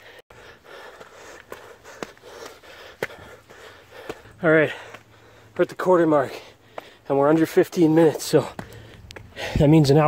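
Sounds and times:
man breathing hard: 0.0s - 5.6s, 6.2s - 7.1s, 8.5s - 9.7s
footfalls on stone steps: 0.9s - 5.0s, 8.0s - 9.7s.

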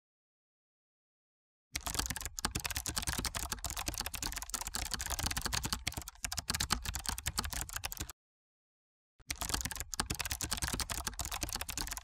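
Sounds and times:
rapid keyboard typing: 1.8s - 8.1s, 9.3s - 12.0s.

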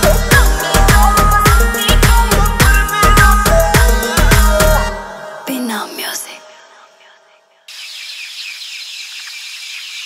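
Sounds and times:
music: 0.0s - 7.7s.

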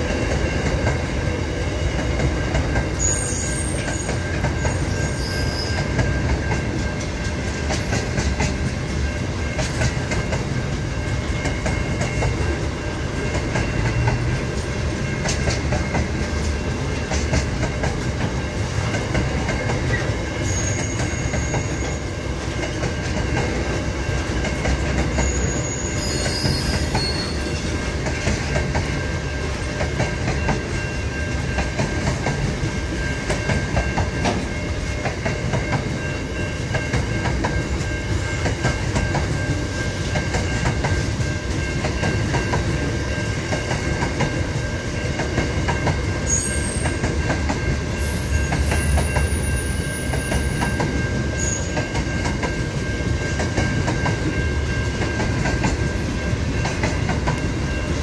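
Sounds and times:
freight train wagons rumbling: 0.0s - 58.0s
wheels clickety-clack over rail joints: 0.0s - 58.0s.

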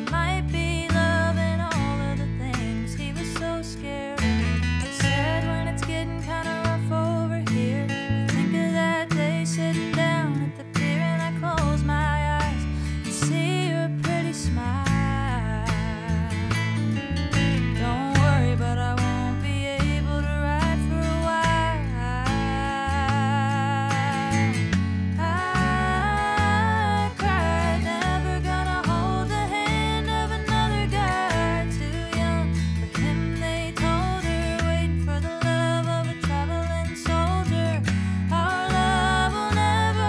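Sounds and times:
acoustic guitars strumming: 0.0s - 40.0s
bass line: 0.0s - 40.0s.

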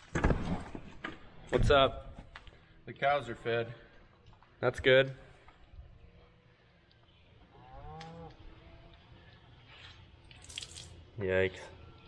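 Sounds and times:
water splattering on concrete: 10.3s - 11.0s.

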